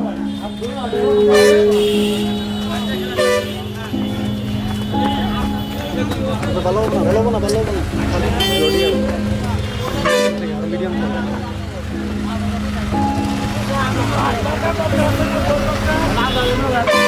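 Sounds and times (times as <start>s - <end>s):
vehicle horns tooting: 0.0s - 7.3s, 8.3s - 10.8s, 15.0s - 17.0s
people talking: 0.0s - 17.0s
traffic engine hum: 0.0s - 17.0s.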